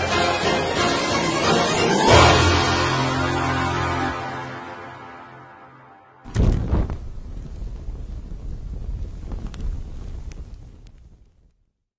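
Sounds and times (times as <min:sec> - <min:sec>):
low wind-like rumble: 0:06.3 - 0:11.6
faint crackles: 0:06.3 - 0:11.9.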